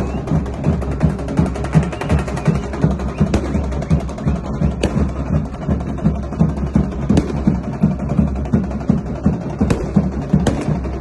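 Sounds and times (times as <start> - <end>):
fast steady drumming: 0.0 - 11.0.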